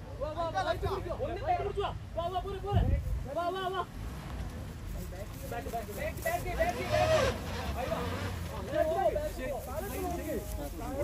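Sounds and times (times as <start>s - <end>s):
off-road vehicle engine running: 3.8s - 11.0s.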